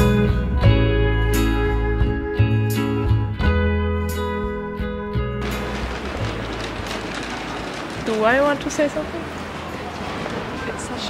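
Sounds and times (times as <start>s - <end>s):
street noise rumble: 5.1s - 11.0s.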